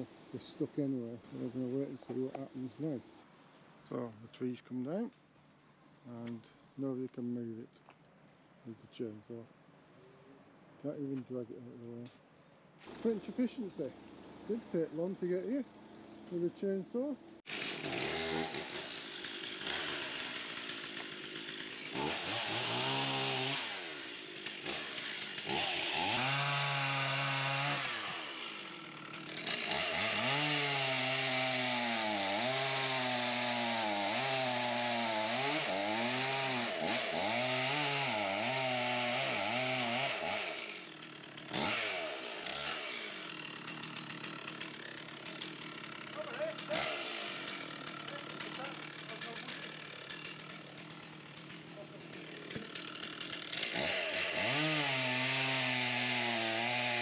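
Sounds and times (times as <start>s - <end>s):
chainsaw cutting wood: 12.8s - 57.0s.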